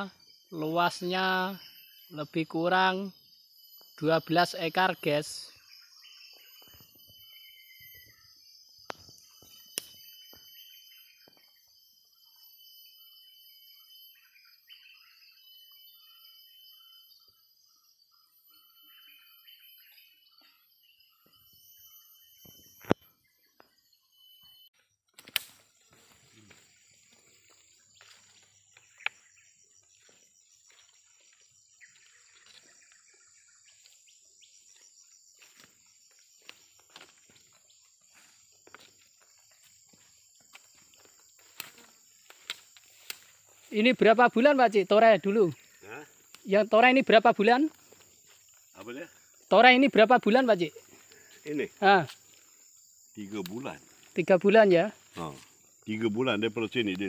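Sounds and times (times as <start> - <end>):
high-pitched insect drone: 0.0 - 24.7, 25.6 - 57.0
bird chirp: 0.0 - 57.0
sharp snaps: 25.2 - 25.6.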